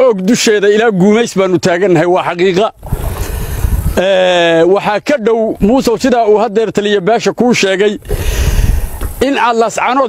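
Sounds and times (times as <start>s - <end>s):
man talking: 0.0s - 2.8s, 4.0s - 8.1s, 9.2s - 10.0s.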